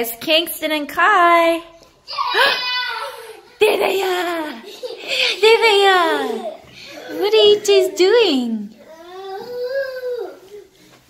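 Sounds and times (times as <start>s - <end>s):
toddler vocal call: 6.1s - 10.7s.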